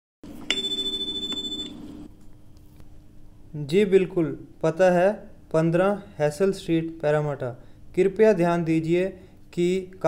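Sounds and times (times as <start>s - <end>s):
electronic beep tone: 0.5s - 1.8s.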